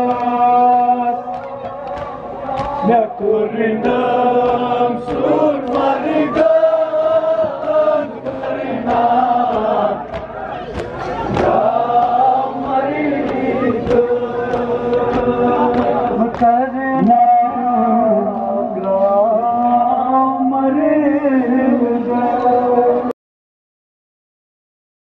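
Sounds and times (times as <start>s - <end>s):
rhythmic chest-beating slaps: 0.0s - 20.1s
men chanting together: 0.0s - 23.1s.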